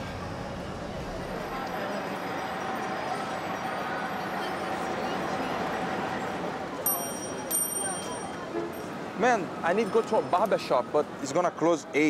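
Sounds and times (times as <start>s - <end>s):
traffic noise: 0.0s - 12.0s.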